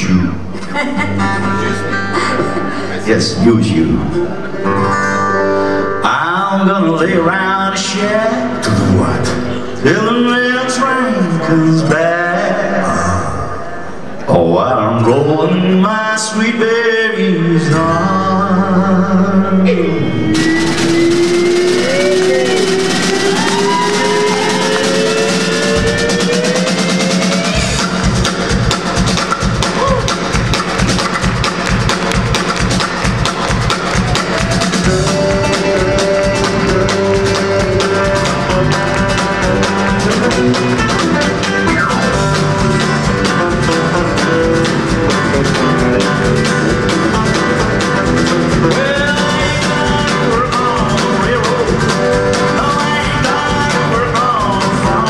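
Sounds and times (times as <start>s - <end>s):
country band playing: 0.0s - 55.0s
guitars: 0.0s - 55.0s
drum kit and bass beat: 20.2s - 55.0s.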